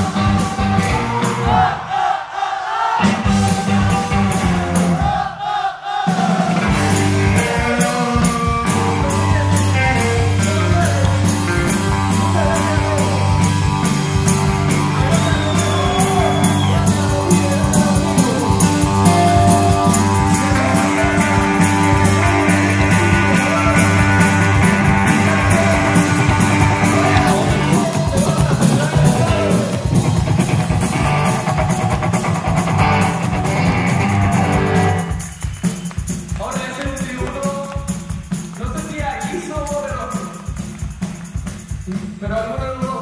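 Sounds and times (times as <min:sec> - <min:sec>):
drum kit with cymbals: 0:00.0 - 0:02.0, 0:02.9 - 0:43.0
electric guitar: 0:06.6 - 0:36.3.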